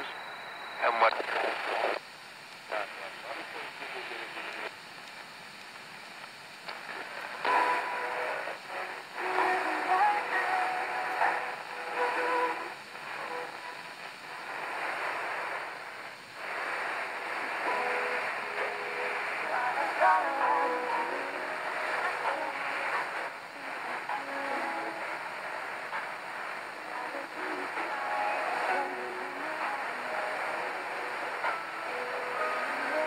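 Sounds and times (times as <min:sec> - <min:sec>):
radio static hiss: 0:00.0 - 0:33.0
weak radio station music: 0:00.0 - 0:33.0.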